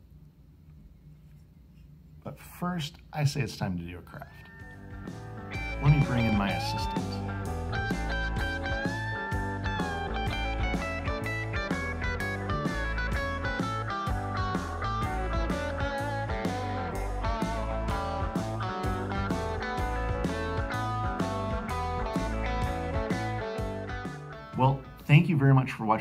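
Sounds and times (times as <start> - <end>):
guitar-led instrumental music: 4.4 - 25.9.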